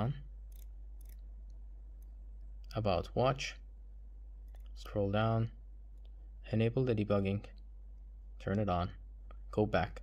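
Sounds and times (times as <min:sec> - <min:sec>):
watch bezel clicks: 0:00.5 - 0:01.3.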